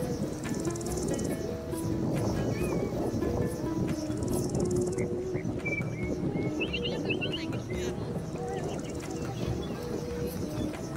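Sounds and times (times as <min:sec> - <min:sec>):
bird chirping: 0:00.0 - 0:10.9.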